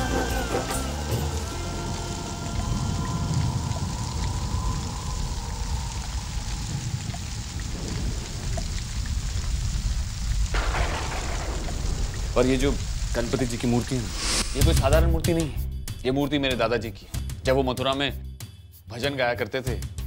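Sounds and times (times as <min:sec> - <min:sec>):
song playing: 0:00.0 - 0:02.4
heavy rainfall: 0:00.0 - 0:15.5
deep rumble: 0:01.9 - 0:17.7
held background music tone: 0:12.6 - 0:20.0.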